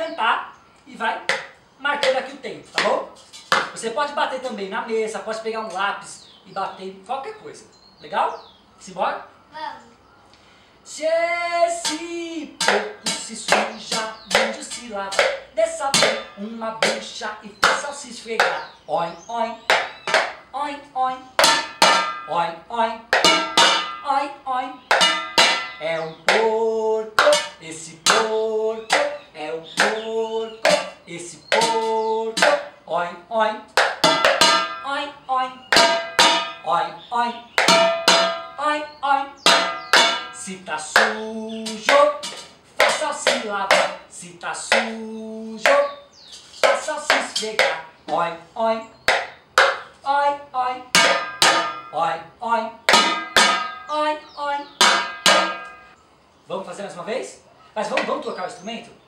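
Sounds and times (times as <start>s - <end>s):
children's song sung: 10.9s - 55.6s
pots and pans drummed: 11.8s - 18.7s, 21.4s - 22.3s, 23.1s - 24.0s, 24.9s - 26.5s, 27.2s - 30.0s, 30.6s - 32.7s, 33.8s - 34.9s, 35.7s - 36.6s, 37.6s - 38.6s, 39.4s - 44.0s, 50.9s - 52.0s, 52.9s - 53.9s, 54.8s - 56.0s.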